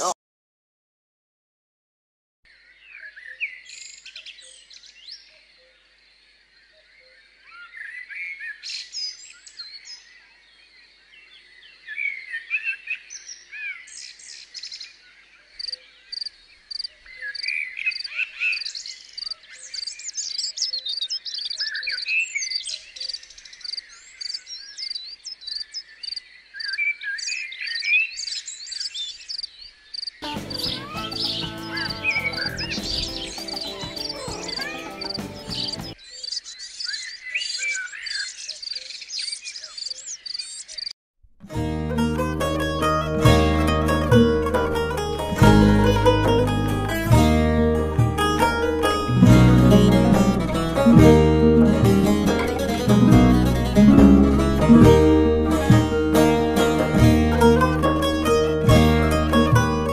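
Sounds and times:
small birds chirping: 0:02.6 - 0:41.0
music: 0:30.2 - 0:36.0, 0:41.5 - 0:59.9
repeating high chirp: 0:30.2 - 0:36.0.

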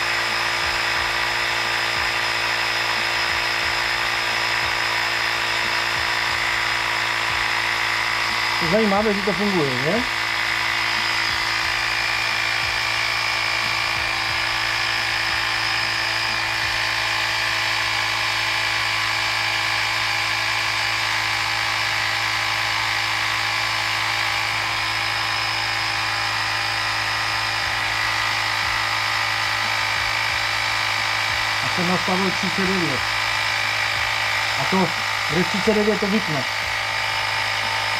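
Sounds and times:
tyre inflator motor drone: 0:00.0 - 0:37.9.

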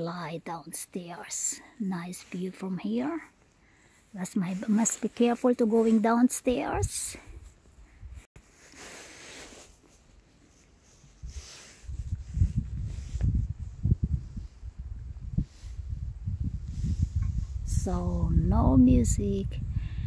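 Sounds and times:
wind buffeting microphone: 0:11.2 - 0:20.0.

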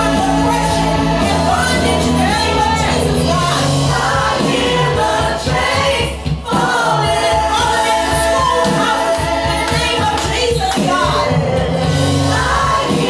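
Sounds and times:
women singing gospel song: 0:00.0 - 0:13.0.

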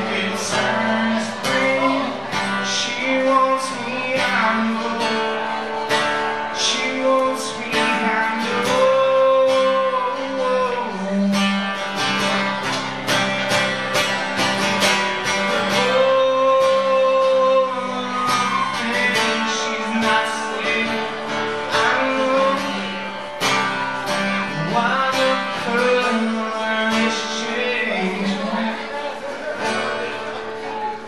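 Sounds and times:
acoustic guitar strumming: 0:00.0 - 0:31.0
man singing country song: 0:00.0 - 0:31.0.

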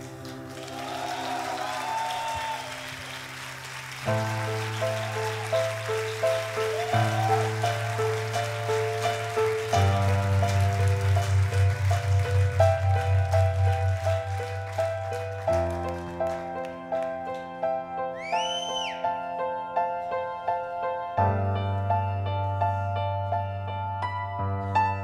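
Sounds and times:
low bass notes: 0:09.3 - 0:15.9.

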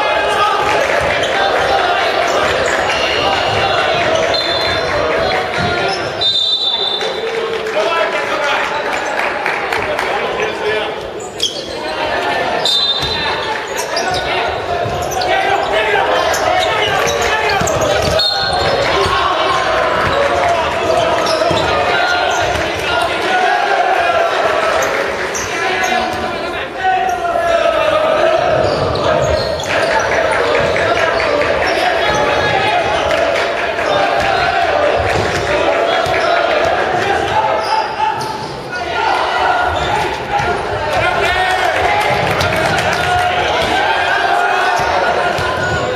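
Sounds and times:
voices calling: 0:00.0 - 0:09.3, 0:10.0 - 0:45.9.

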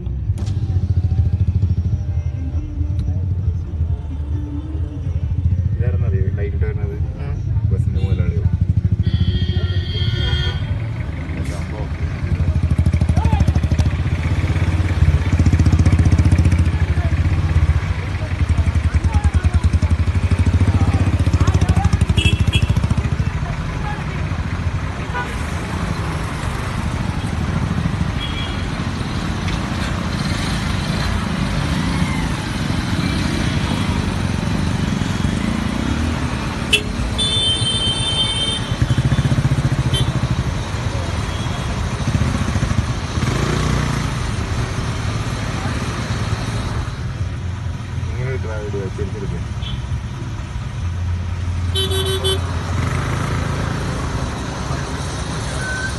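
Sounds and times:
diesel bus engine rumble: 0:00.0 - 0:55.9
road and traffic noise: 0:00.0 - 0:55.9.

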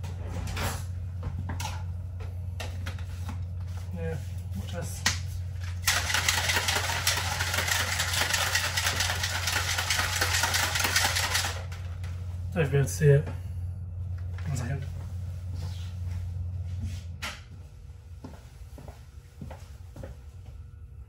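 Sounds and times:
steady low hum: 0:00.0 - 0:21.0
plastic shaker bottle shaken: 0:05.7 - 0:11.9.

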